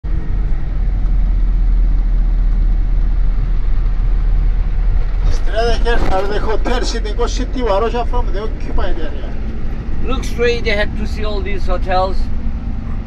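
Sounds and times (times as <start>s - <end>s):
minibus engine and road noise: 0.0s - 13.0s.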